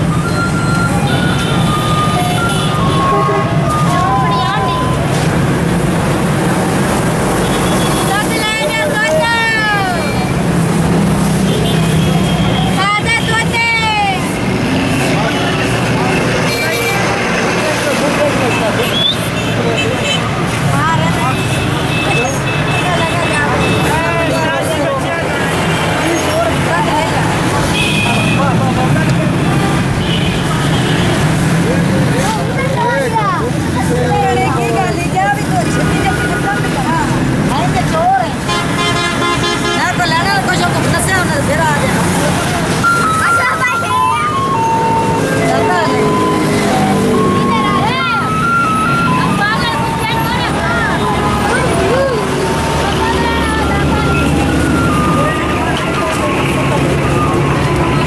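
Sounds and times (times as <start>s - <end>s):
crowd voices talking: 0.0s - 58.0s
traffic and motorcycle engines: 0.0s - 58.0s
vehicle horn: 27.7s - 28.6s, 38.5s - 40.0s.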